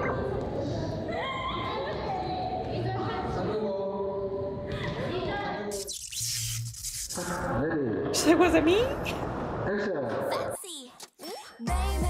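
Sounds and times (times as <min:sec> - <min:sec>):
high sliding calls: 0:05.7 - 0:07.5.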